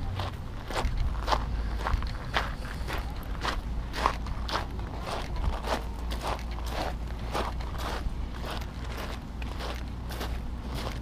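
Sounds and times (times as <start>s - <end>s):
footsteps crunching on gravel: 0.0s - 11.0s
steady low rumble: 0.0s - 11.0s.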